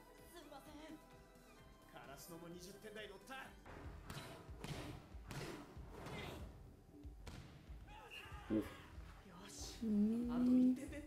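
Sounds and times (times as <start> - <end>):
dialogue: 0.2 - 4.0, 7.7 - 11.0.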